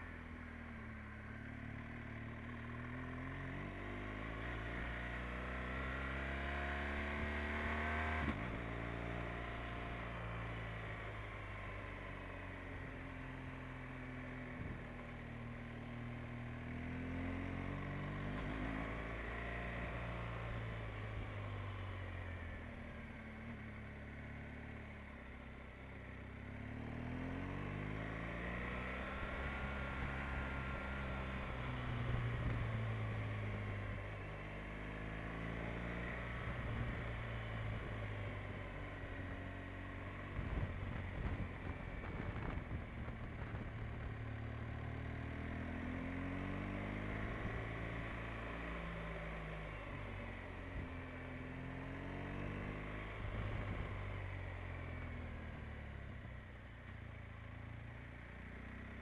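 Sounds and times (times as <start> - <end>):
motorcycle engine revving: 0.7 - 11.4, 26.4 - 56.3.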